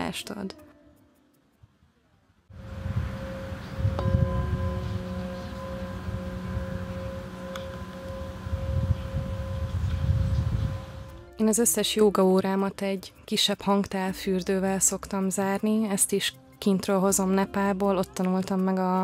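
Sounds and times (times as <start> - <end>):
low rumble: 2.5 - 11.3
singing bowl ringing: 2.5 - 11.4.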